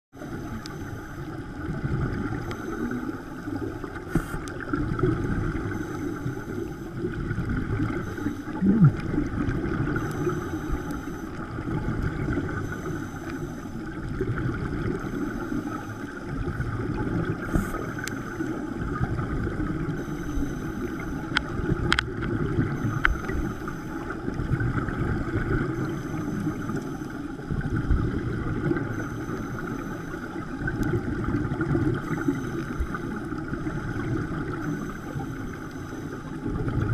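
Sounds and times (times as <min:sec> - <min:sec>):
muffled underwater rumble: 0:00.2 - 0:36.9.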